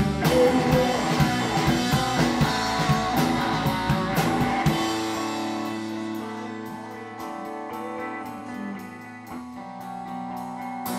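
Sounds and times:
distorted electric guitar: 0.0 - 10.9
drum kit beat: 0.0 - 10.9
electric bass: 0.0 - 10.9.

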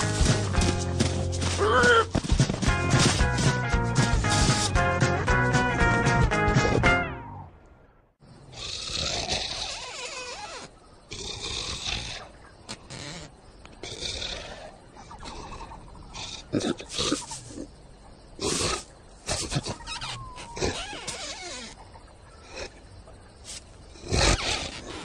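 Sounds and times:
cartoon lion snoring: 8.5 - 9.9, 11.1 - 12.3, 13.8 - 17.7.

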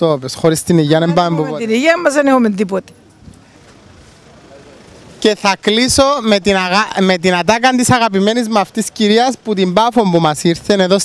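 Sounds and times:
indistinct market voices: 0.0 - 11.0.

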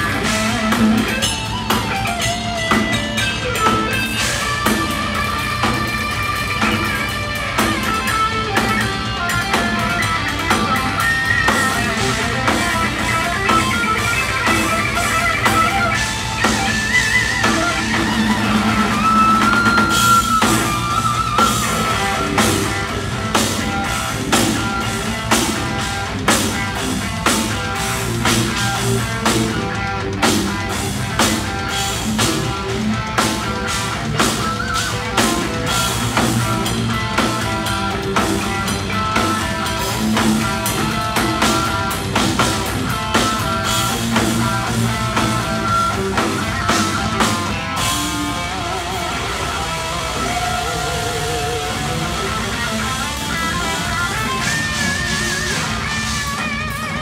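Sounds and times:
bass guitar: 0.0 - 57.0
drum kit beat: 0.0 - 57.0
electric guitars: 0.0 - 57.0.

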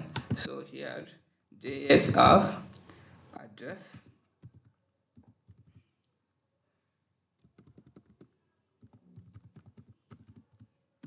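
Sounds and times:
faint keyboard typing: 4.0 - 6.2, 7.4 - 11.0.

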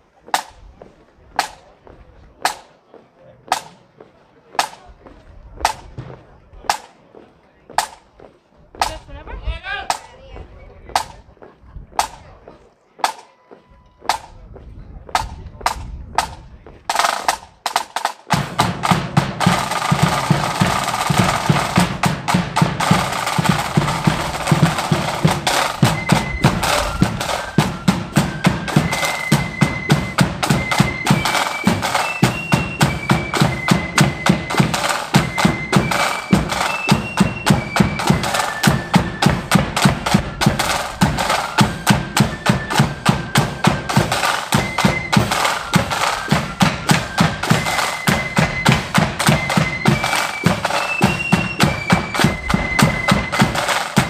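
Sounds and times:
drum taps: 5.6 - 6.9, 7.7 - 8.1, 8.8 - 9.1, 10.9 - 11.2, 12.0 - 12.2, 13.0 - 13.3
snare drum roll: 15.2 - 54.0
flutes playing a tune: 18.3 - 54.0.

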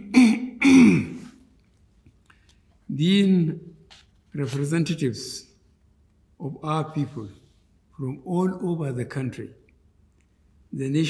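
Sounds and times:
man coughing and clearing throat: 0.0 - 1.4.

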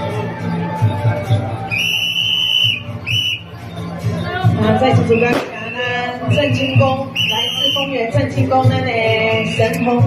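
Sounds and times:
whistle blast: 1.7 - 3.5, 5.1 - 8.0.

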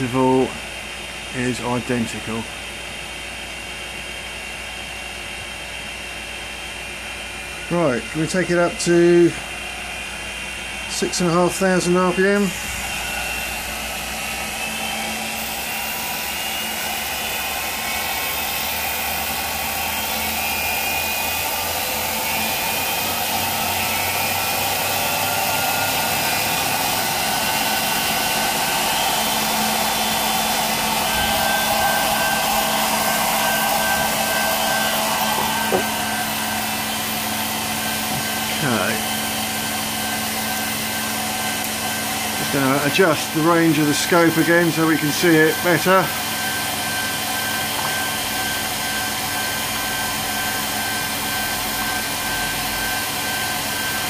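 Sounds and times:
electric motor whirring: 11.3 - 54.0.

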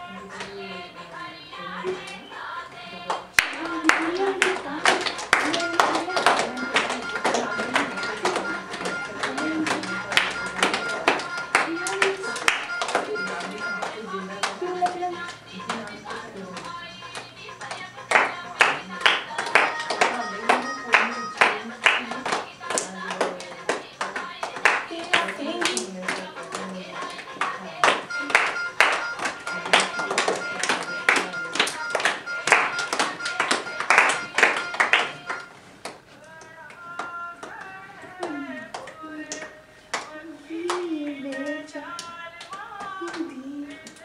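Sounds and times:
music with singing: 0.0 - 44.0
girls clapping hands rhythmically: 3.0 - 44.0.

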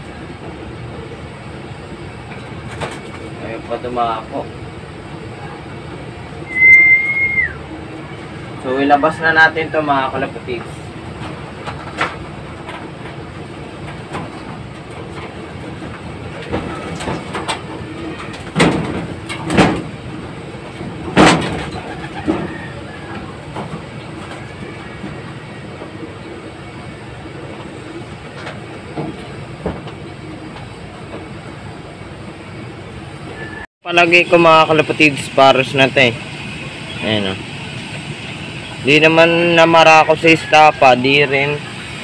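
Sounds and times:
steady background noise: 0.0 - 42.0
pigeons moving in cage: 20.7 - 25.4.

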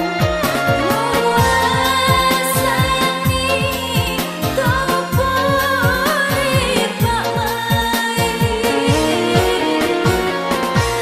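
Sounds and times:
keyboard backing: 0.0 - 11.0
person singing with vibrato: 0.8 - 10.2
low electronic drum hits: 0.9 - 4.2.

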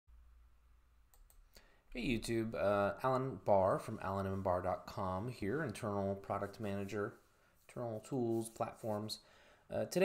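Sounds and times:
faint clicks: 1.1 - 1.6.

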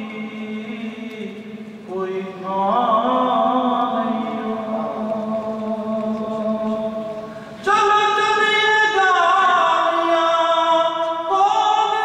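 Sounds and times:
man chanting through microphone: 0.0 - 12.0.

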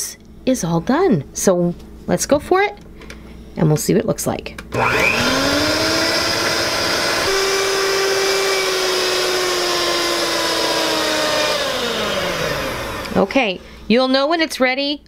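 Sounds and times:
electric hand mixer whining: 4.7 - 13.3.

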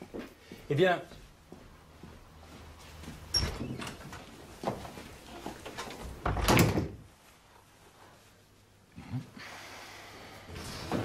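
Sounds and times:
door squeak: 3.3 - 4.1
door banging shut: 6.2 - 7.0.

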